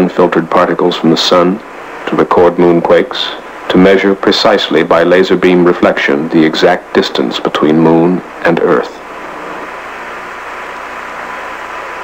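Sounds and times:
radio hiss: 0.0 - 12.0.

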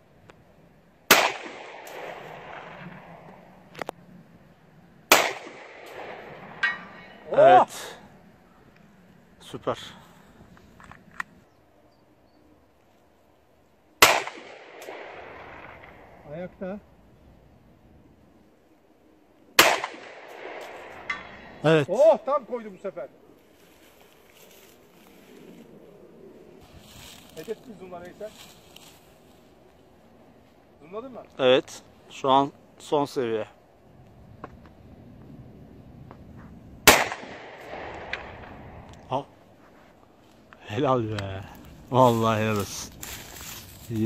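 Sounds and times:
pistol shot: 1.1 - 3.3, 5.1 - 6.8, 14.0 - 16.2, 19.6 - 21.4, 36.8 - 38.8
bullet ringing on steel target: 6.6 - 7.2.

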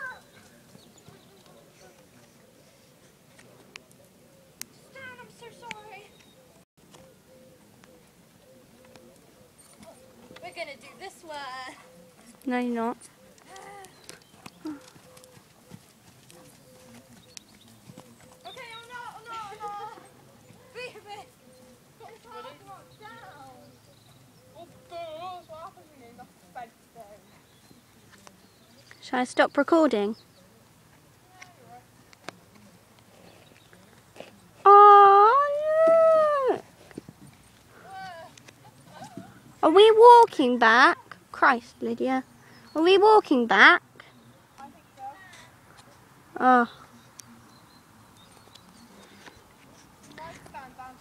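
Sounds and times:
hoofbeats on sand: 13.9 - 20.7.

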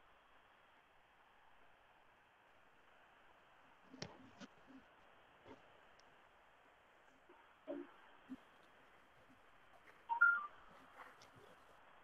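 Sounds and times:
faint background hiss: 0.0 - 12.0
short beeps at different pitches: 10.1 - 10.6.

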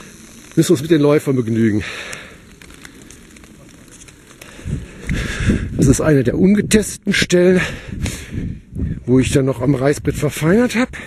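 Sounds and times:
footsteps on leaf litter: 1.9 - 5.0.

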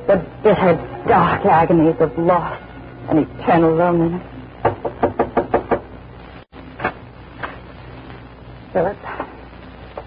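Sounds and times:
knocking on a door: 4.6 - 5.9.

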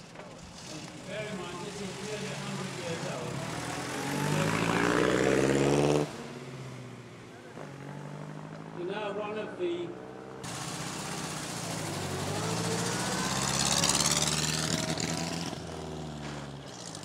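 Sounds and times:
car engine accelerating: 0.0 - 17.0.

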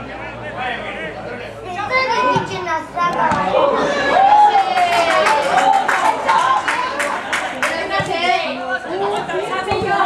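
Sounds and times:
people shouting: 3.3 - 7.0.

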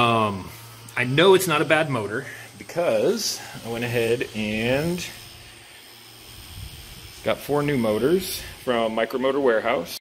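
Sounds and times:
small drone motors whirring: 0.0 - 10.0.

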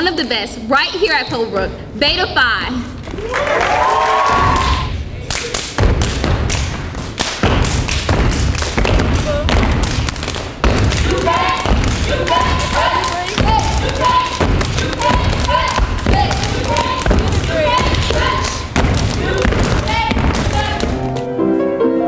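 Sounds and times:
hand claps: 4.4 - 21.3
rhythmic stomps on stage floor: 5.6 - 21.2
voices calling out in rhythm: 10.8 - 21.0.

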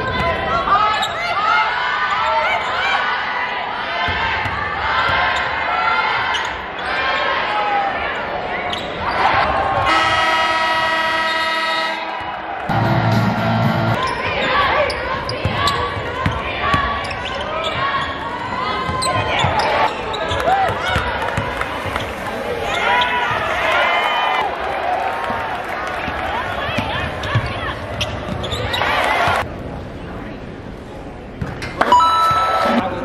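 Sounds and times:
players and spectators voices: 0.0 - 33.0
electronic horn: 9.9 - 12.1
basketball bouncing on court: 20.6 - 21.6, 26.7 - 28.6
short lower tone: 31.8 - 32.9.

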